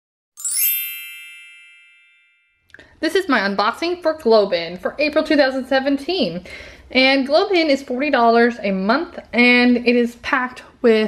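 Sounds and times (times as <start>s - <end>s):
bright chime ding: 0.4s - 2.7s.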